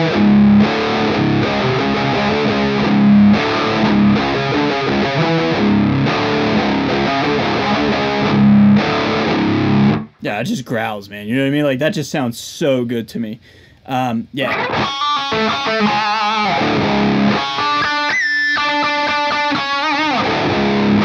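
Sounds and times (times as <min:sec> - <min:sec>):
distorted electric guitar riffing: 0:00.0 - 0:10.2, 0:14.4 - 0:21.0.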